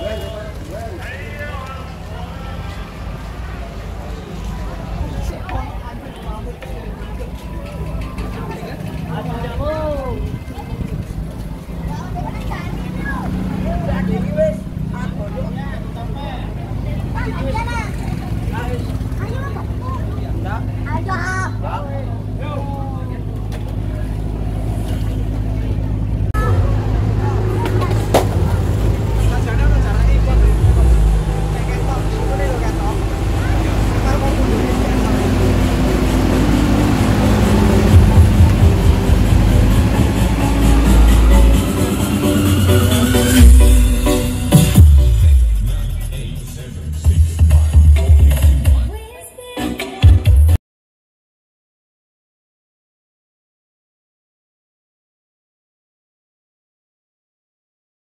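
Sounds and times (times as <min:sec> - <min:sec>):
crowd voices: 0:00.0 - 0:50.3
deep bass music from loudspeakers: 0:26.3 - 0:50.6.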